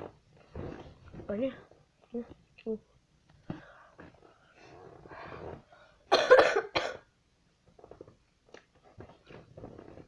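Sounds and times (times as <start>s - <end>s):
boy coughing: 6.1s - 7.1s.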